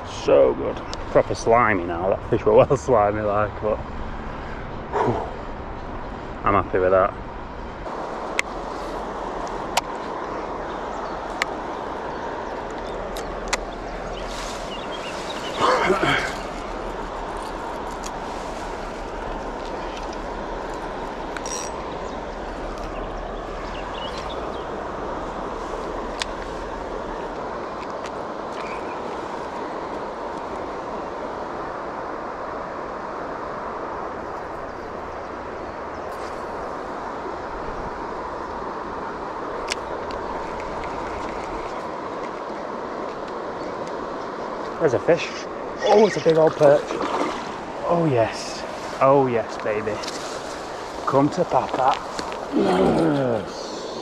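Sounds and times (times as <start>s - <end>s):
river water flowing: 0.0s - 54.0s.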